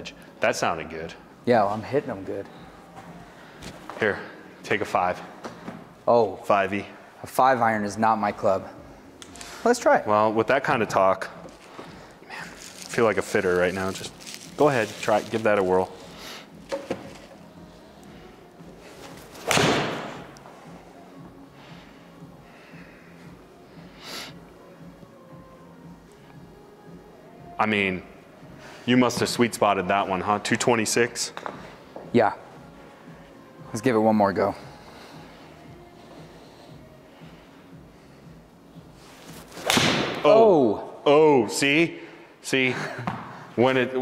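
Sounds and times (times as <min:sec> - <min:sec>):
golf club striking ball: 0:39.6 - 0:40.2.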